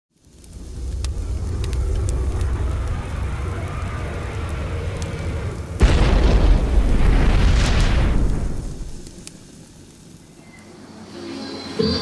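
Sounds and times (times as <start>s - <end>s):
faint sharp crackles: 0.1s - 11.0s
deep low rumble: 0.3s - 9.2s.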